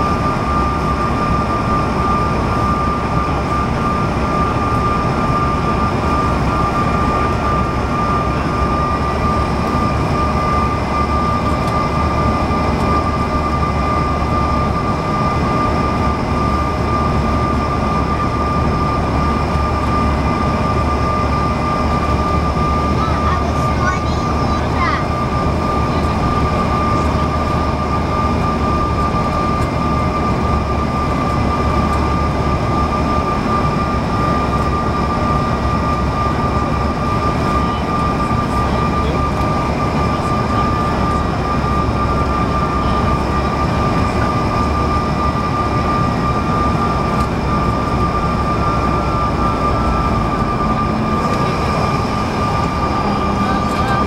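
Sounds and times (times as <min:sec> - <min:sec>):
jet engine whine: 0:00.0 - 0:54.0.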